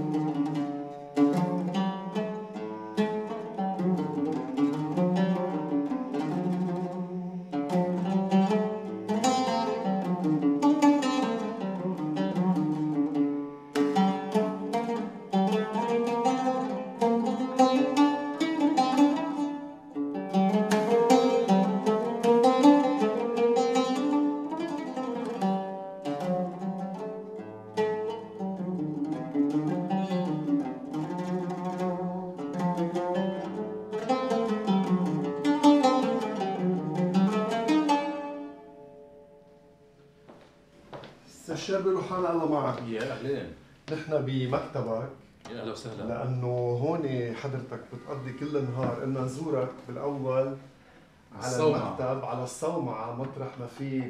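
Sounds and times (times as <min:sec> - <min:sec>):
oud melody: 0:00.0 - 0:54.0.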